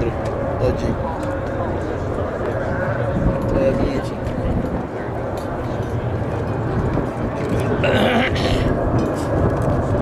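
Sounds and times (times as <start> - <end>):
people talking: 0.0 - 9.3
jet engine rumble: 0.0 - 10.0.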